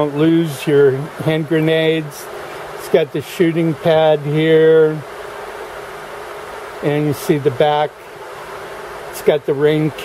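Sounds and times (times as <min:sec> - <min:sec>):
machine hum with hiss: 0:00.0 - 0:10.0.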